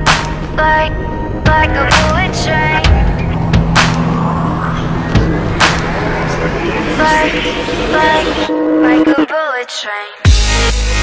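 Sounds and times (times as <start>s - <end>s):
low synth bass: 0.0s - 8.5s
rushing whoosh: 0.0s - 9.1s
person singing: 0.5s - 11.0s
sharp hit: 1.4s - 8.5s.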